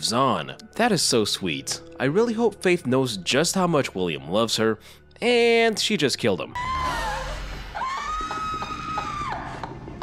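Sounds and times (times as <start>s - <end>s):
low background music: 0.0s - 10.0s
woman shrieking: 6.6s - 9.7s.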